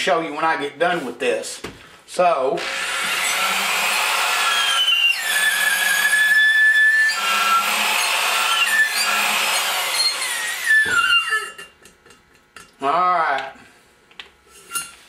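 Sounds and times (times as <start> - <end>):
electric drill whining: 2.6 - 11.6.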